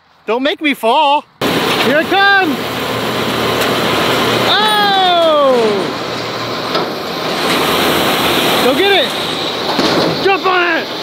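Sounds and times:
tractor and baler running: 0:01.4 - 0:11.0
person exclaiming: 0:04.5 - 0:06.0.

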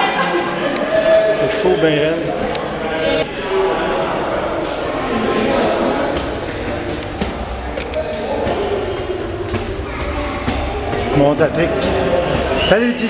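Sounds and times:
indistinct voices echoing: 0:00.0 - 0:13.0
footsteps on stairs: 0:02.2 - 0:13.0.

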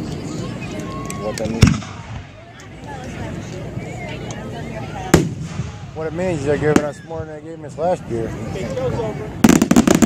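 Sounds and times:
spectators talking: 0:00.0 - 0:10.0
loud firework bang: 0:01.6 - 0:02.3, 0:09.4 - 0:10.0.

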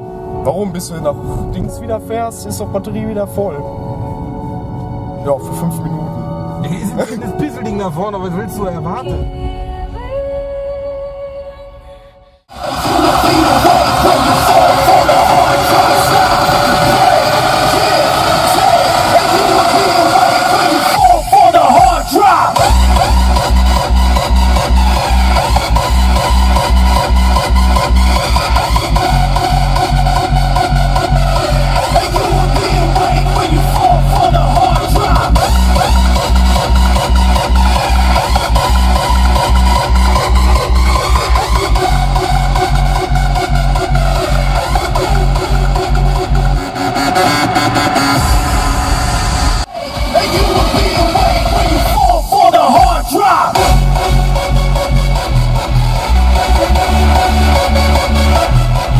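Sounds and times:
loud music through car audio: 0:00.0 - 0:58.9
heavy bass beats: 0:12.5 - 0:58.9.

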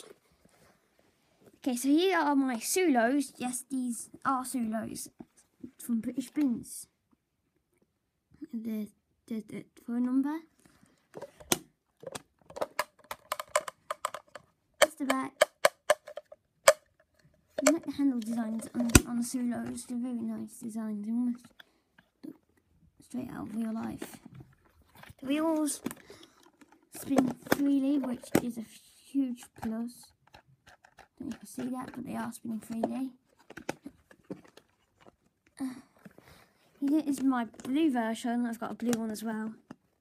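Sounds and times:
plastic toys clicking and tapping: 0:11.2 - 0:20.0, 0:23.8 - 0:35.3, 0:36.8 - 0:38.0, 0:38.6 - 0:39.9.

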